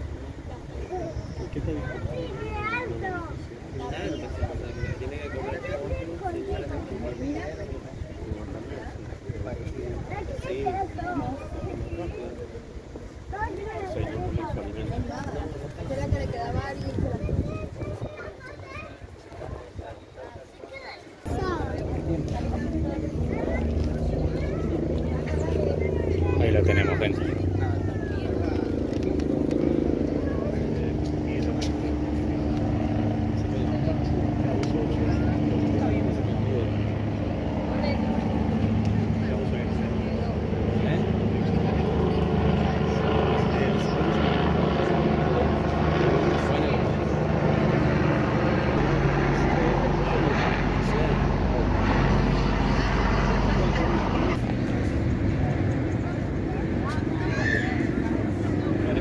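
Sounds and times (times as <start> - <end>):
people talking: 0.0 - 59.0
vehicle engines humming: 21.2 - 59.0.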